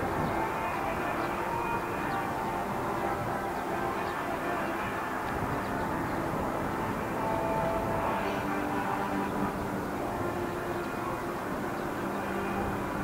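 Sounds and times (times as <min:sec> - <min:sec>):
constant wash of noise: 0:00.0 - 0:13.0
distant mechanical drone: 0:00.0 - 0:13.0.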